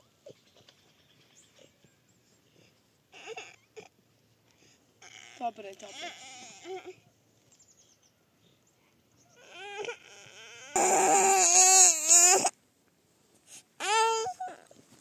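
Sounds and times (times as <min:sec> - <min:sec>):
toddler crying: 0:09.4 - 0:12.5, 0:13.8 - 0:14.7.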